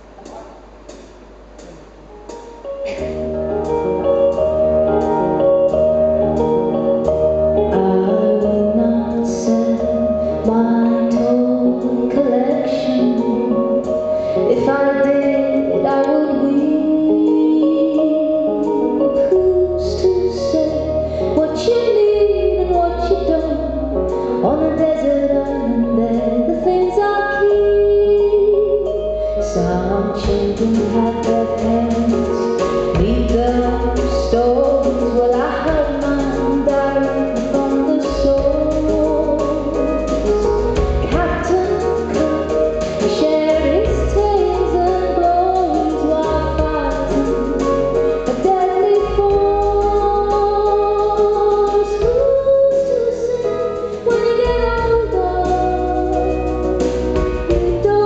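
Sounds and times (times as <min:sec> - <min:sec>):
woman singing: 0:07.3 - 0:56.8, 0:57.4 - 0:58.0.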